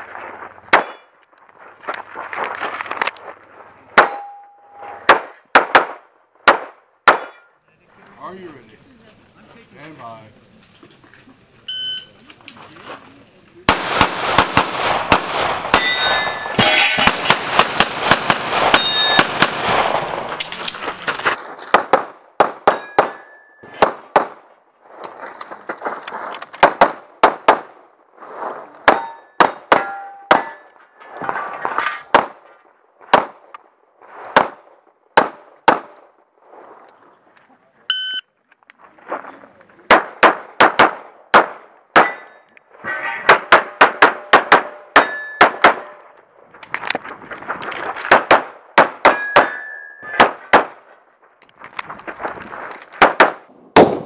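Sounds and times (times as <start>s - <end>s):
pistol shots: 0.7s - 1.0s, 5.0s - 7.5s, 13.7s - 20.4s, 21.7s - 24.5s, 26.6s - 27.7s, 28.8s - 30.7s, 34.4s - 36.0s, 39.9s - 42.4s, 43.3s - 46.0s, 48.0s - 50.8s, 53.0s - 54.0s
steel targets clanging: 4.0s - 5.0s, 15.6s - 17.4s, 18.7s - 19.3s, 22.7s - 23.8s, 28.9s - 32.1s, 42.0s - 42.6s, 44.9s - 46.0s, 49.1s - 50.4s
shot timer beep: 11.7s - 12.1s, 37.9s - 38.2s.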